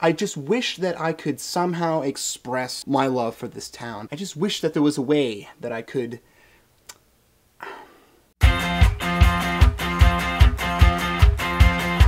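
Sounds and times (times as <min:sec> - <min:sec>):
man speaking: 0:00.0 - 0:06.2
short breath: 0:06.2 - 0:06.7, 0:07.6 - 0:08.3.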